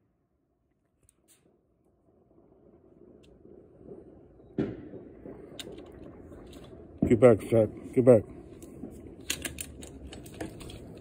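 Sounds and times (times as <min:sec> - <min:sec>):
firework crackles: 0:01.3 - 0:11.0
low rumble: 0:01.8 - 0:11.0
firework bang: 0:02.6 - 0:09.2.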